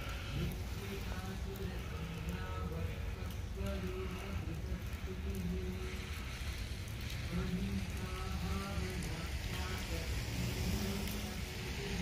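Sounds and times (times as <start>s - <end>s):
rain hiss: 0.0s - 12.0s.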